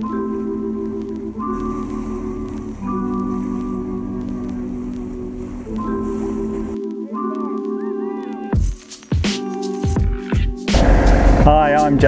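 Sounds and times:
background music with sustained chords: 0.0s - 12.0s.

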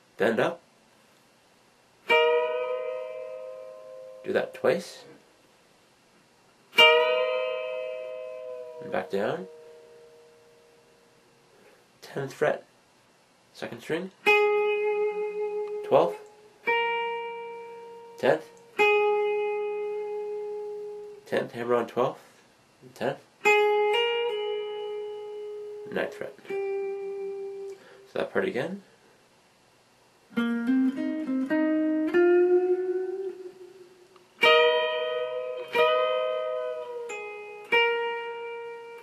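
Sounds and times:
electric guitar note ringing: 2.0s - 5.0s, 6.7s - 11.4s, 14.2s - 21.2s, 23.4s - 28.1s, 30.3s - 39.0s
electric guitar bent notes: 6.8s - 10.8s, 30.3s - 39.0s.

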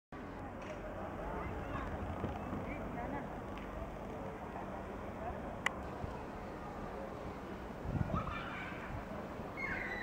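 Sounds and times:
distant people talking: 0.2s - 10.0s
traffic hum: 0.2s - 10.0s.

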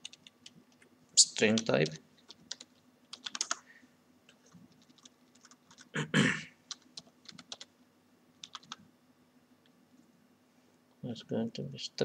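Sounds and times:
computer keyboard typing: 0.0s - 0.6s, 1.4s - 3.6s, 4.4s - 5.9s, 6.7s - 7.7s, 8.4s - 8.8s.

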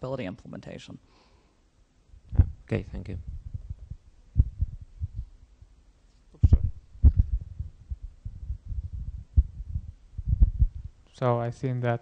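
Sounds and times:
microphone handling thumps: 2.2s - 5.7s, 6.4s - 11.0s.

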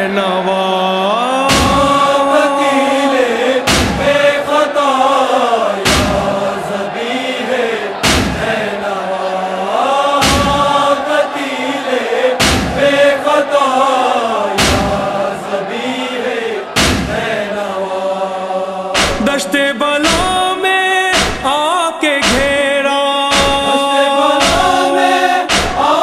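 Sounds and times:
men chanting a lament: 0.0s - 26.0s
heavy thuds: 1.5s - 2.1s, 3.7s - 4.3s, 5.9s - 6.5s, 8.0s - 8.6s, 10.2s - 10.8s, 12.4s - 13.0s, 14.6s - 15.1s, 16.8s - 17.2s.

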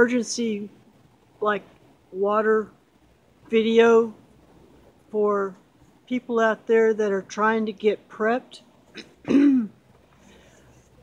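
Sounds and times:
man clearing his throat: 9.0s - 9.8s.

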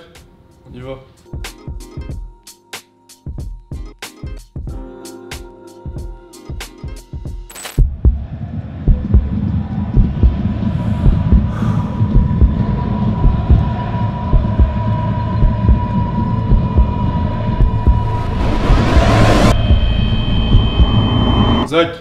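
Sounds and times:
music beats: 1.3s - 21.7s
low rumbling drone with thumps: 7.8s - 21.7s
high ringing tone: 16.0s - 21.8s.

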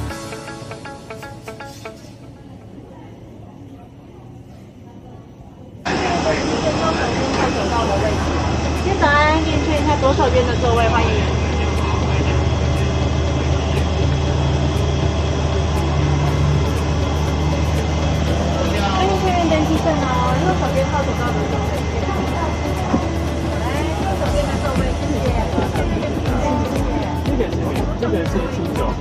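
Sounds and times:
voices speaking: 5.8s - 14.9s, 15.8s - 29.0s.

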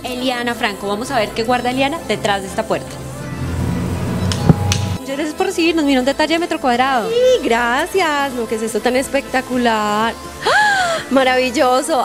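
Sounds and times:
background music with low beat: 1.7s - 5.0s.

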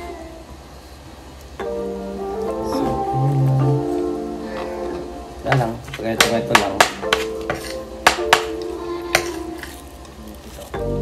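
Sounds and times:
background music: 1.5s - 11.0s.

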